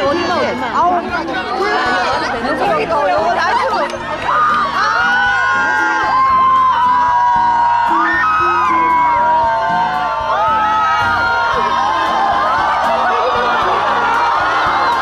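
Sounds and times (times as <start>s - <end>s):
music: 0.0s - 15.0s
crowd cheering and screaming: 1.2s - 15.0s.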